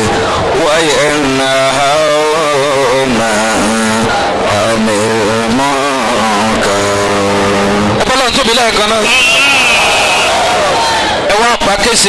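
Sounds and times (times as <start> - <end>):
man singing a chant: 0.0 - 7.9.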